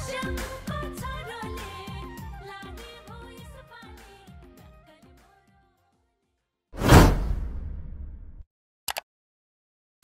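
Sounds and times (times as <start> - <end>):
low rumble: 6.8 - 8.4
whoosh sound effect: 6.8 - 8.4.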